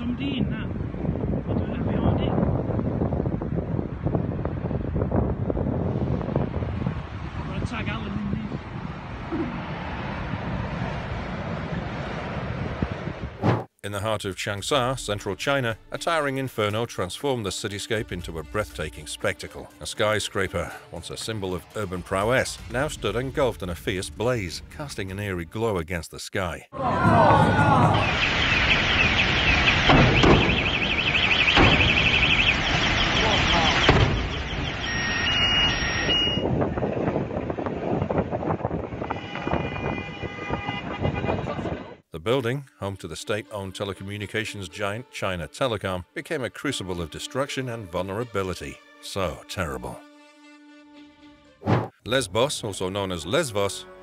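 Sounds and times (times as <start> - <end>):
wind buffeting microphone: 0.0 - 13.7, 36.1 - 42.0
dull thumps: 13.4 - 13.7, 29.9 - 30.7, 33.9 - 34.4, 51.6 - 52.0
electronic siren warbling: 27.0 - 36.5.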